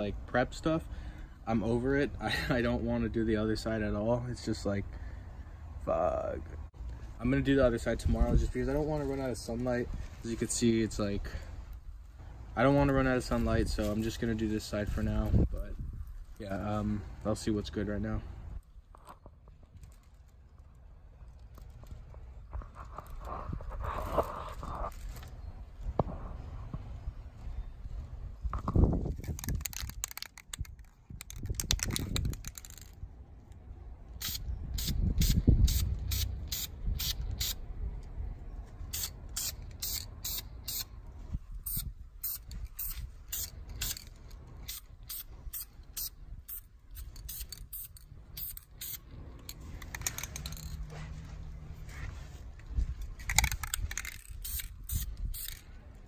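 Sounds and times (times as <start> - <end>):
spray can strokes: 34.2 - 37.6, 38.9 - 40.9, 41.6 - 44.0, 44.6 - 49.1, 54.0 - 55.7.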